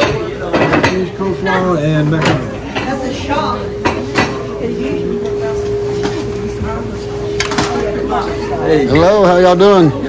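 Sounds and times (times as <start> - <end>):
indistinct voices and chatter: 0.0 - 10.0
steady hum: 0.0 - 10.0.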